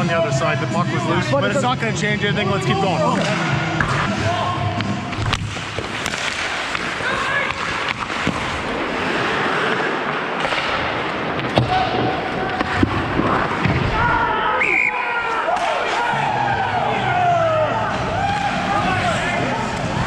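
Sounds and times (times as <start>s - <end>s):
hockey sticks and puck clacking: 3.1s - 14.1s, 15.3s - 16.2s, 17.9s - 20.0s
skate blades scraping ice: 5.1s - 13.8s
players shouting: 6.2s - 8.5s, 11.5s - 20.0s.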